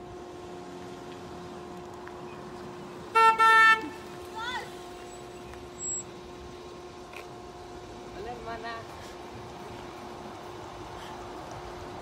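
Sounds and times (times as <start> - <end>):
car horn toots: 3.1 - 4.0.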